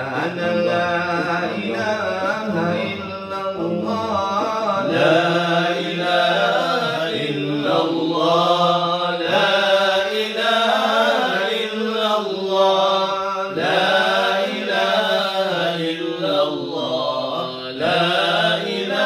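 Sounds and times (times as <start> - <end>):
men chanting together: 0.0 - 19.0.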